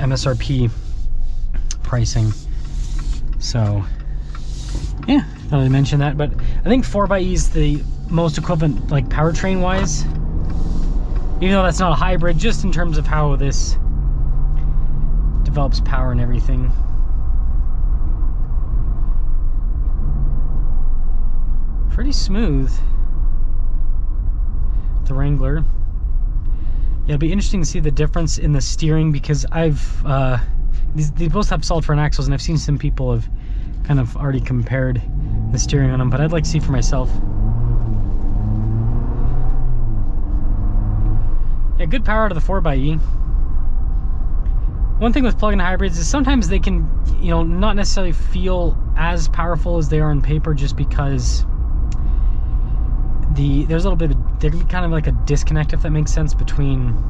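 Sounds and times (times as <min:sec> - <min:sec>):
faint hum: 0:00.0 - 0:37.2
car cabin road rumble: 0:00.0 - 0:57.0.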